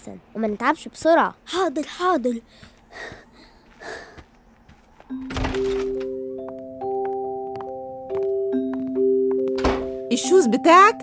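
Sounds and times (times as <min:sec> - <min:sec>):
door thunk: 0:05.2 - 0:06.1, 0:09.5 - 0:10.0.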